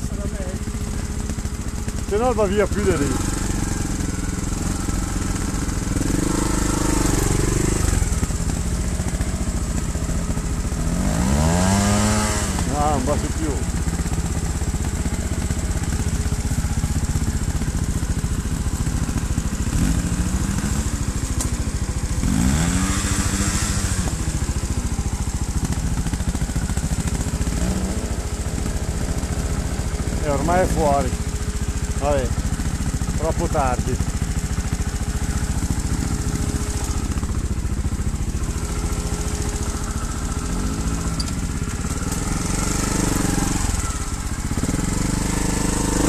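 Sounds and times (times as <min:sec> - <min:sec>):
motorcycle engine revving: 0:00.0 - 0:46.0.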